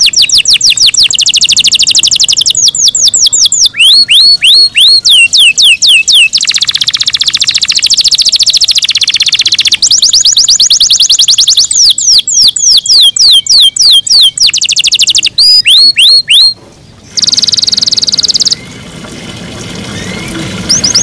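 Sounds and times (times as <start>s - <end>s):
canary singing: 0.0s - 18.9s, 19.8s - 21.0s.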